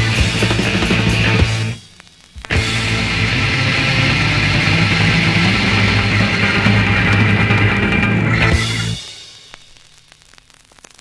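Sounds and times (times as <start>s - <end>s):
rock music from vinyl record: 0.0s - 11.0s.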